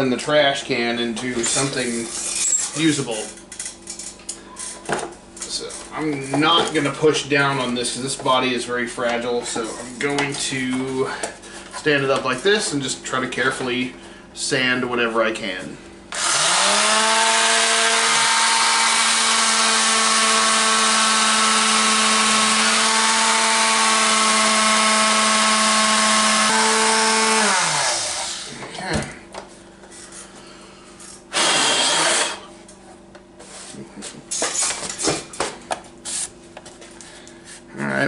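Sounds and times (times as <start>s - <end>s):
electric sander running: 16.1s - 28.6s, 31.3s - 32.4s.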